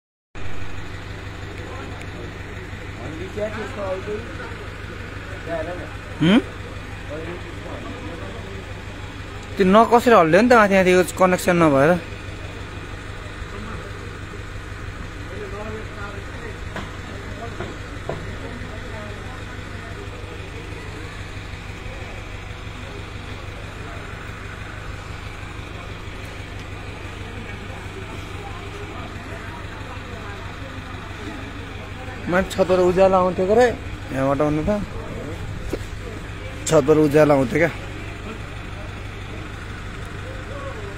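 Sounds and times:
engine idling: 0.4s - 40.9s
people's voices: 0.5s - 40.9s.

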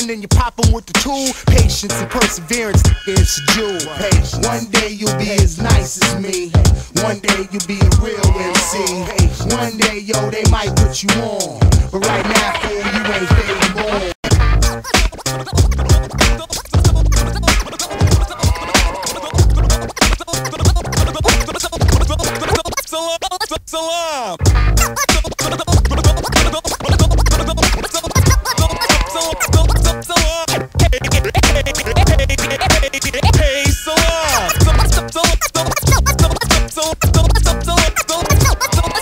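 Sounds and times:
hip hop drum beat: 0.0s - 23.5s, 24.4s - 39.0s
turntable scratching: 0.0s - 39.0s.

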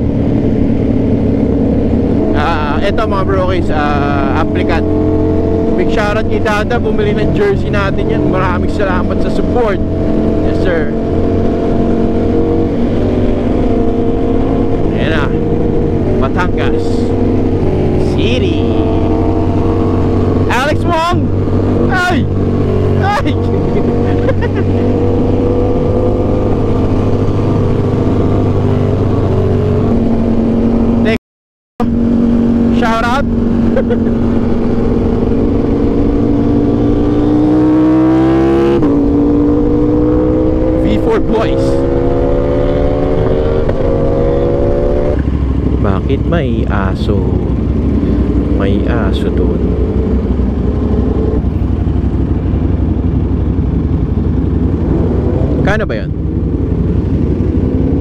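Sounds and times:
motorcycle engine revving: 0.0s - 31.2s, 31.8s - 58.0s
wind rush: 9.8s - 31.0s, 49.5s - 58.0s.

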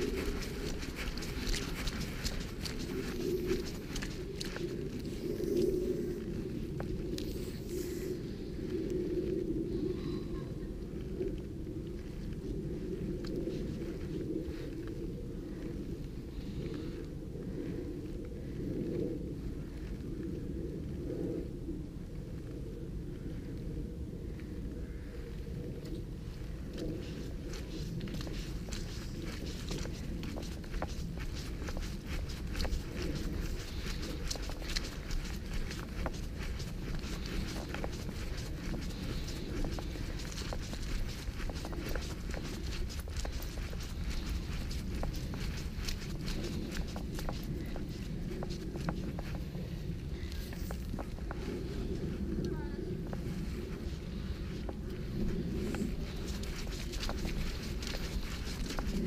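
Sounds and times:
footsteps on leafy dirt path: 0.0s - 8.6s, 26.3s - 59.0s
steady low rumble: 0.0s - 59.0s.

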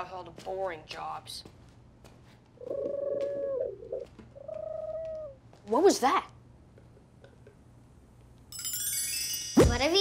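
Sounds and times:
small creature calling: 2.6s - 5.4s.

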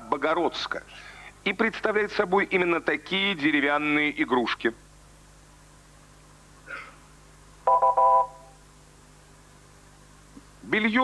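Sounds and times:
electronic quiz show beeps: 7.7s - 8.5s.

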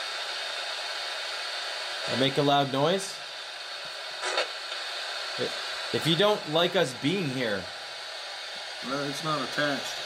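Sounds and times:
radio static hiss: 0.0s - 10.0s
burst of noise: 3.7s - 6.4s.

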